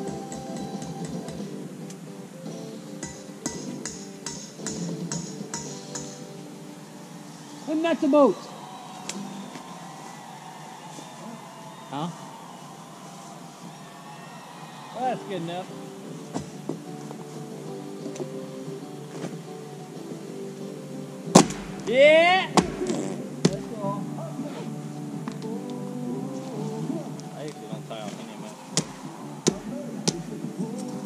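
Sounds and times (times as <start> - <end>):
music from portable player: 0.0 - 11.6, 12.4 - 31.0
sharp knock: 21.4 - 21.8.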